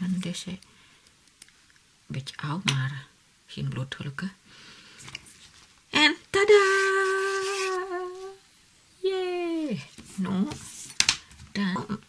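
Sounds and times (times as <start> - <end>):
woman singing long note: 6.0 - 8.4.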